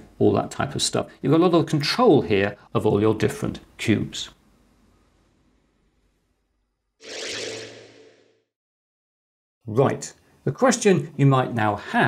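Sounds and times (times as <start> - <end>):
whoosh sound effect: 7.0 - 8.4.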